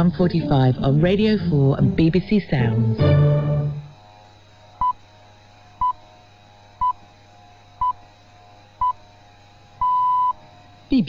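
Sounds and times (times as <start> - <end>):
low steady hum: 0.0 - 7.0.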